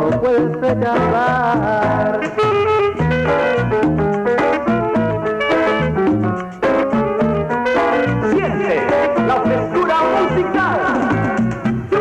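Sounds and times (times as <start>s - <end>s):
bass line: 0.0s - 12.0s
electronic keyboard: 0.0s - 12.0s
percussion: 0.0s - 12.0s
dance band horn lines: 2.3s - 3.8s, 7.3s - 12.0s.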